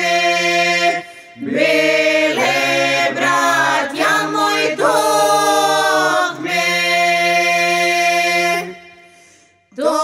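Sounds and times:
men singing folk song: 0.0s - 8.7s.

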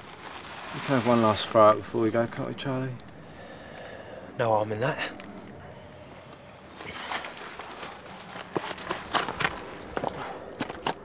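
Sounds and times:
footsteps scuffing and knocking: 7.0s - 11.0s.

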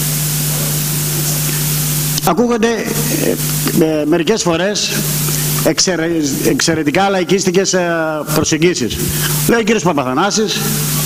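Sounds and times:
electrical hum: 0.0s - 11.0s
sound system hiss: 0.0s - 11.0s.

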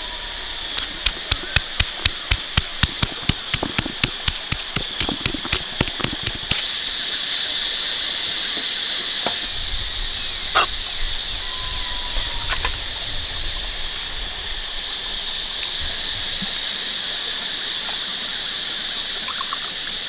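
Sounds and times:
high insect buzz: 0.0s - 20.0s
stone pestle knocking in mortar: 1.0s - 6.5s.

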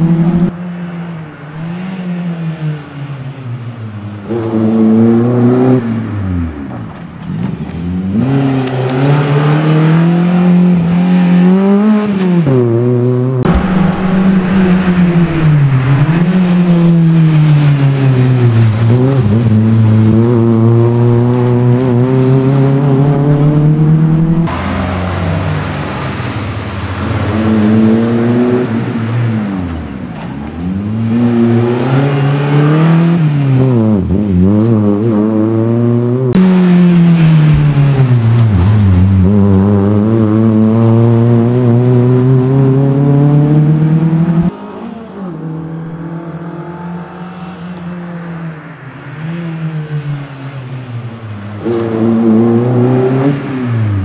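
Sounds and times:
car engine revving hard: 51.6s - 54.0s.

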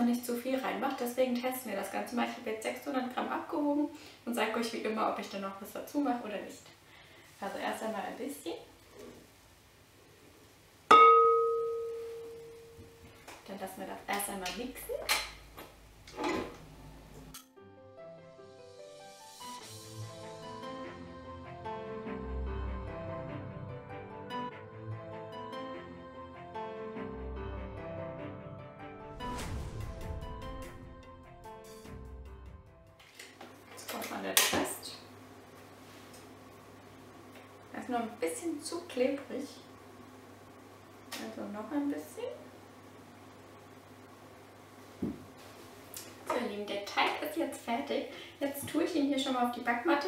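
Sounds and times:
clink on glass bowl ringing: 10.9s - 12.8s
kitchen handling noises: 16.1s - 16.7s
background music: 16.6s - 33.1s.

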